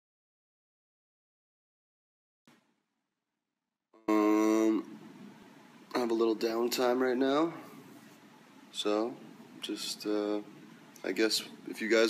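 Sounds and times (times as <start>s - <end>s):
man holding a sung note: 4.0s - 4.9s.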